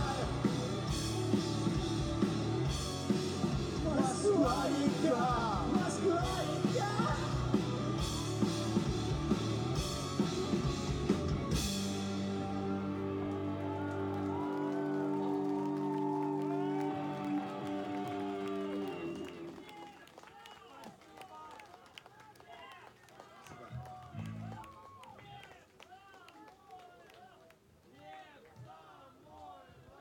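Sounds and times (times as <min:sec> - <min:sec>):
rock band final chord: 0:00.0 - 0:19.3
audience cheering and shouting: 0:00.0 - 0:19.9.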